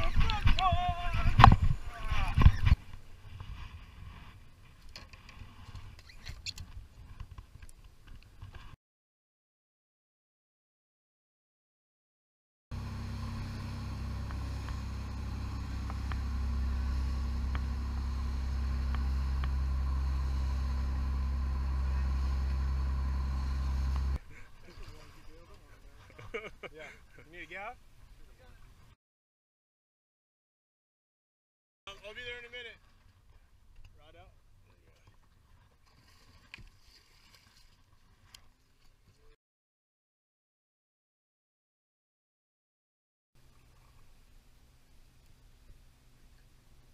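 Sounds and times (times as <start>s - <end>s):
boat engine drone: 12.7s - 26.0s
water rushing along hull: 12.8s - 28.9s, 34.6s - 39.3s, 43.4s - 46.9s.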